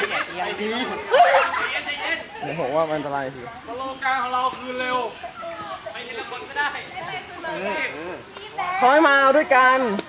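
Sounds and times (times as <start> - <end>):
young people talking and calling out: 0.0 - 10.0.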